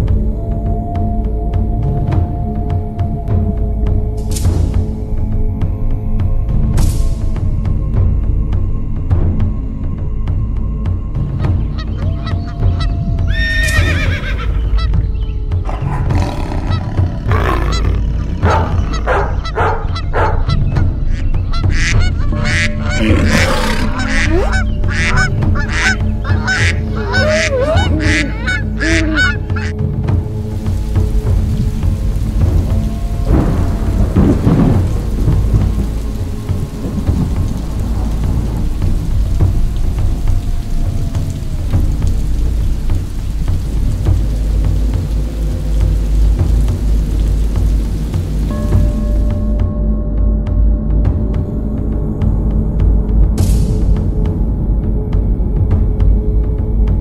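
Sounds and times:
steady rain: 0.0 - 49.7
geese honking: 18.4 - 29.8.

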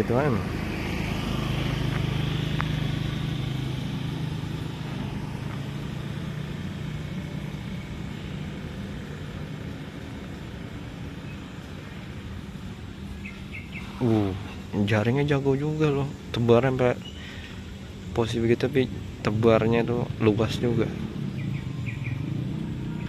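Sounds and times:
outdoor noise: 0.0 - 23.0
vehicle engine hum: 0.0 - 23.0
faint bird chirps: 13.1 - 14.7, 17.0 - 17.7, 21.0 - 23.0.

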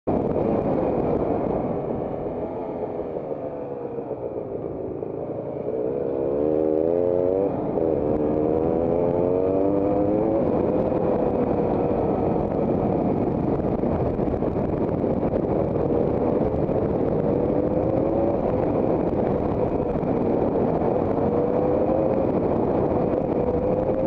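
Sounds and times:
rushing wind noise: 0.0 - 24.0
motorcycle engine revving: 0.1 - 24.0.

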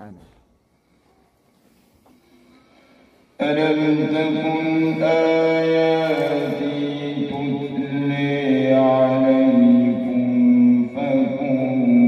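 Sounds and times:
man reciting melodically: 3.3 - 12.0.

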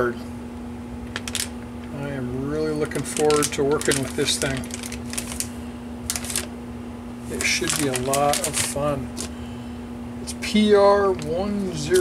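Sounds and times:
anti-static bag crinkling: 1.0 - 1.6, 2.8 - 6.5, 7.2 - 9.4, 11.0 - 12.0.

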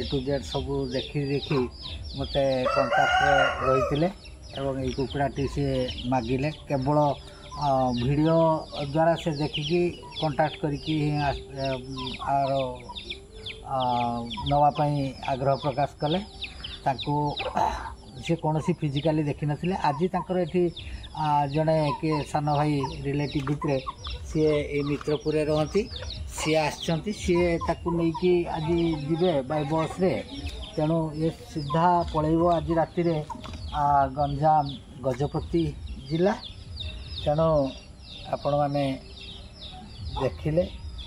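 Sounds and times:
chickens drawn-out wavering calls: 0.0 - 41.0.

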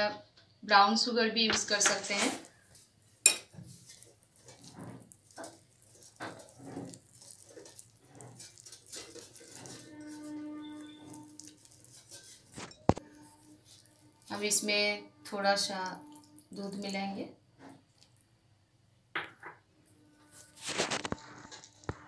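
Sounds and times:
whisk clinking and scraping glass bowl: 3.2 - 14.7.

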